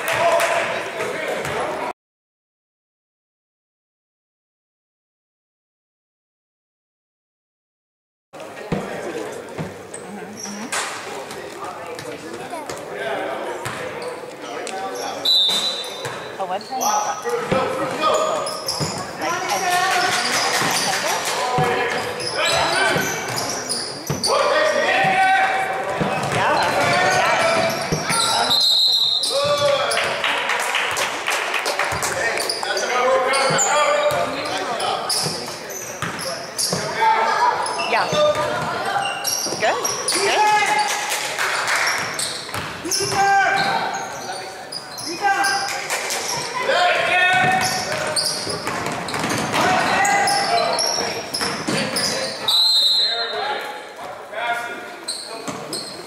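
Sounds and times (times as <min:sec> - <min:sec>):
voices calling out in hall: 0:08.4 - 0:56.0
basketball bouncing on wooden floor: 0:26.0 - 0:27.0, 0:47.4 - 0:49.7.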